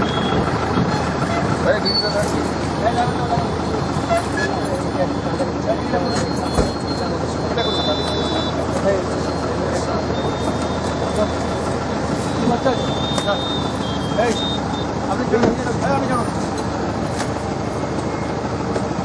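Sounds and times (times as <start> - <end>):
indistinct voices talking: 0.0 - 19.0
passing vehicles rushing: 0.0 - 19.0.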